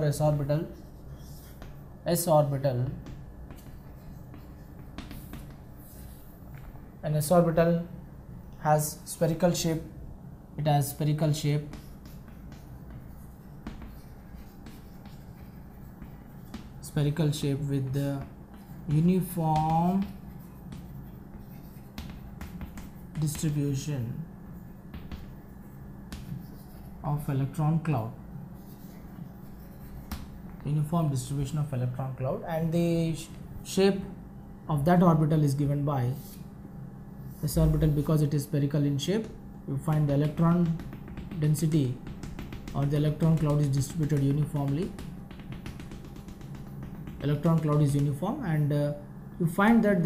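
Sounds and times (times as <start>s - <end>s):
chalk scraping on blackboard: 0.0s - 1.9s, 3.0s - 6.6s, 11.0s - 23.9s, 24.8s - 27.3s, 28.6s - 30.4s, 39.2s - 48.2s
sharp chalk clicks: 39.2s - 48.2s.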